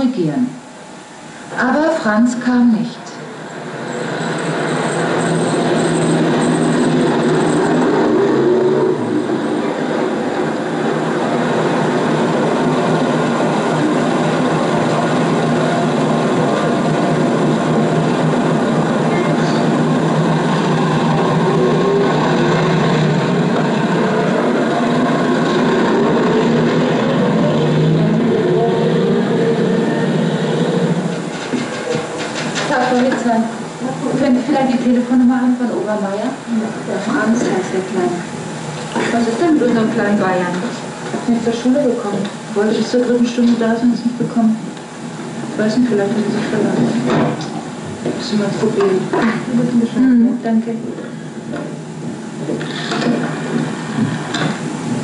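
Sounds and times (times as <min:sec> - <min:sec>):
street traffic: 0:03.2 - 0:55.0
bus diesel engine droning: 0:03.4 - 0:32.3.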